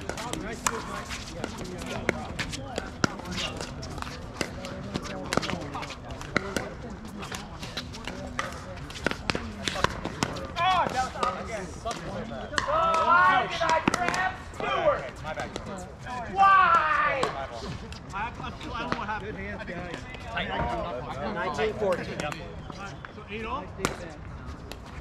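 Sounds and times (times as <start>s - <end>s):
voices: 0.0s - 25.0s.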